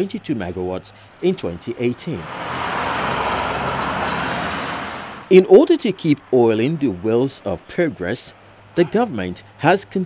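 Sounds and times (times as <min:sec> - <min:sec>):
passing road vehicle: 0:01.8 - 0:05.4.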